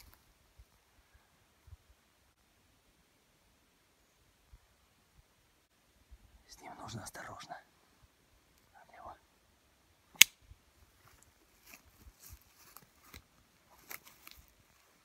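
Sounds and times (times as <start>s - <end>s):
faint ticks and rustles: 6.1s - 9.3s, 10.7s - 15.0s
sharp loud click: 10.1s - 10.4s.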